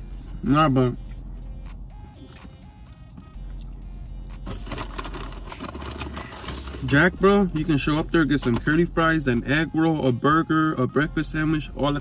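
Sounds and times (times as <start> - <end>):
low hum inside a car: 0.0 - 12.0.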